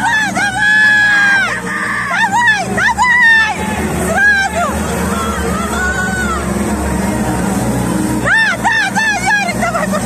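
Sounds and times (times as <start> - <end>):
crowd din in sports hall: 0.0 - 10.0.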